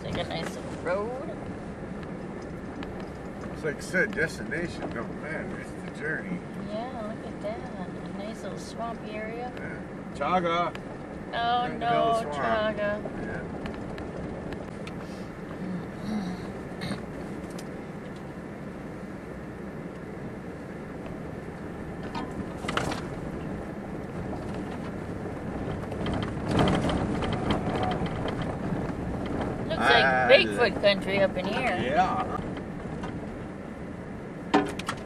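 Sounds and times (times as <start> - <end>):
truck engine rumble: 0.0 - 35.0.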